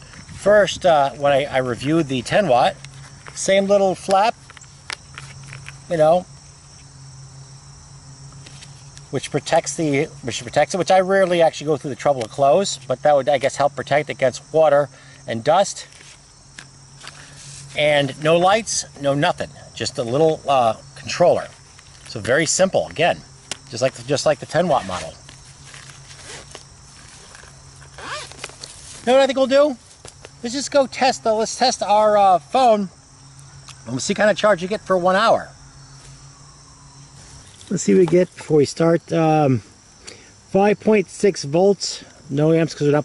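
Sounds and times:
insects chirping: 0.0 - 43.0
fabric rustling: 24.7 - 29.1.

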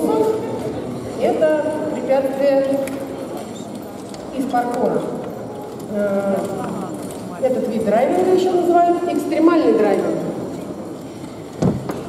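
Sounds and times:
people talking: 0.0 - 3.0, 4.3 - 5.2, 5.8 - 10.4.

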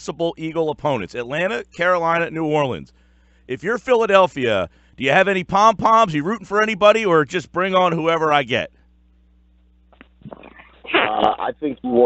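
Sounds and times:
man speaking over phone: 0.0 - 2.9, 3.5 - 8.7, 10.9 - 12.0
telephone line hum: 0.0 - 12.0.

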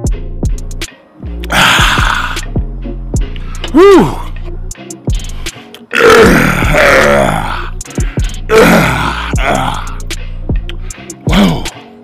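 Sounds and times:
hip-hop beat: 0.0 - 12.0
man burping loudly: 1.4 - 2.5, 5.8 - 7.8, 8.5 - 10.0, 11.3 - 11.8.

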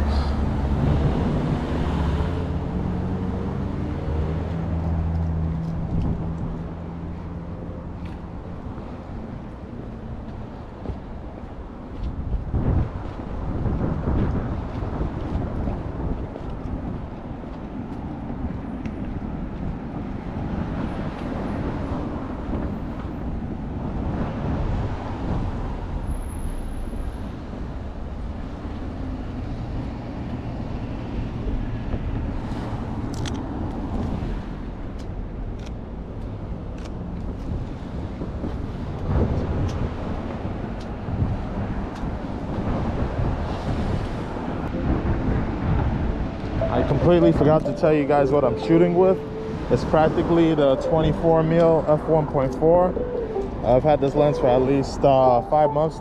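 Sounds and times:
road traffic passing: 0.0 - 56.0
wind rumble on microphone: 0.0 - 56.0.

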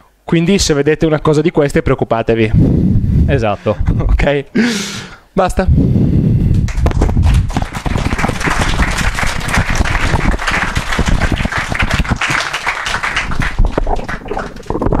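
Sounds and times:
audience applauding: 6.6 - 15.0.

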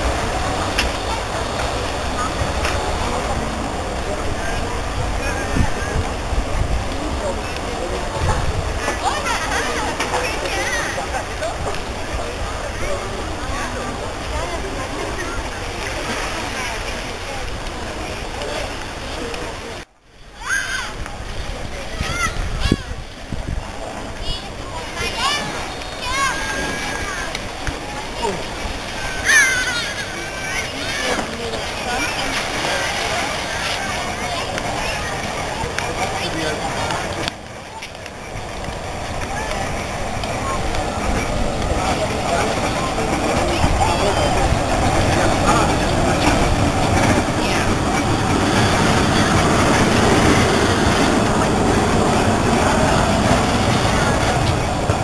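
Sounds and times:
murmur of voices: 0.0 - 55.0
tram wheels rumbling on rails: 0.0 - 55.0.

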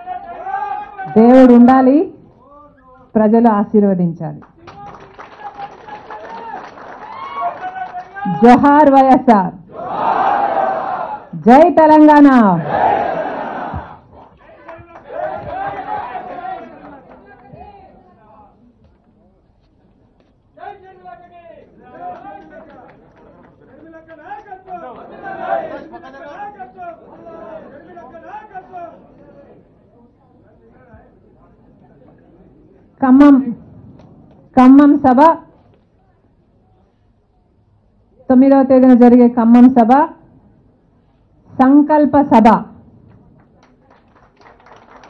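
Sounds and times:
overlapping chatter: 12.6 - 33.0.

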